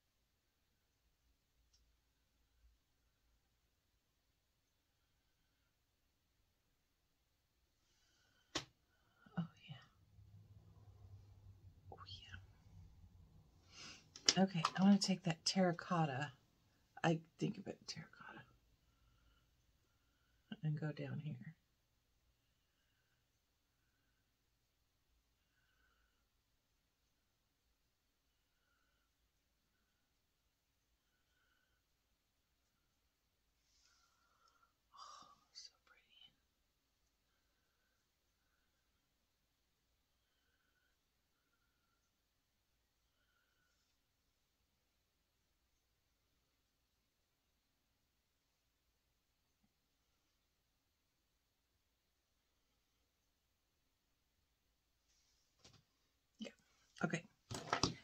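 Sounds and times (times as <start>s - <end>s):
woman whispering: 9.2s - 10.0s, 11.8s - 12.7s, 14.3s - 16.4s, 17.0s - 18.6s, 20.5s - 21.6s, 35.0s - 36.6s, 56.4s - 57.3s.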